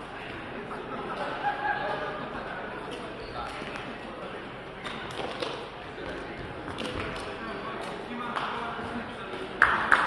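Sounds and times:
echoing background chatter: 0:00.0 - 0:10.0.

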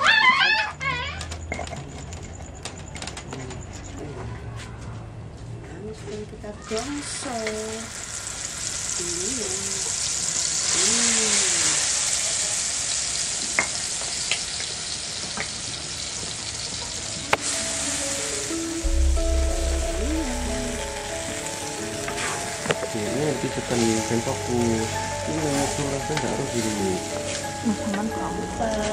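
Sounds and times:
chili paste sizzling in oil: 0:06.6 - 0:28.9.

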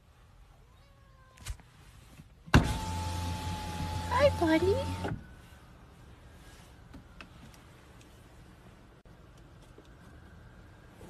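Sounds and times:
power window motor whining: 0:02.6 - 0:05.2.

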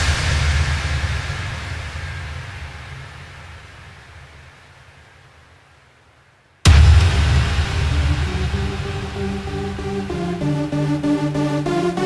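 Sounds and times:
low bass rumble: 0:06.7 - 0:12.0.

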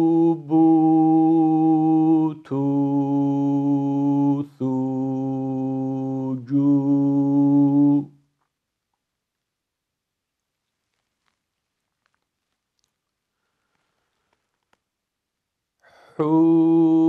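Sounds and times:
man reciting syllables: 0:15.9 - 0:17.0.

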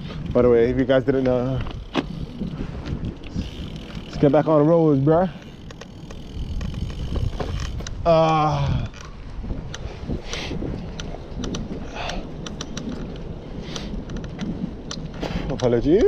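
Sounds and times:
bicycle road rumble: 0:00.0 - 0:16.0
wind noise on microphone: 0:00.0 - 0:16.0
sharp clicks: 0:05.4 - 0:16.0
hissing puffs of breath: 0:09.8 - 0:10.7, 0:11.8 - 0:12.4, 0:13.6 - 0:14.0.

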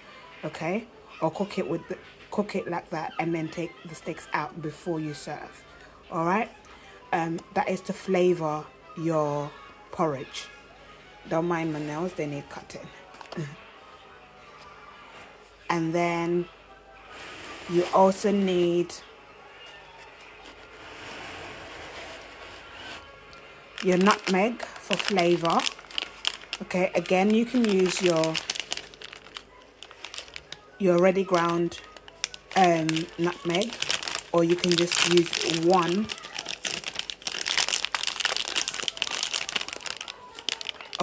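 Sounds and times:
plastic packet rustling: 0:23.8 - 0:41.0.

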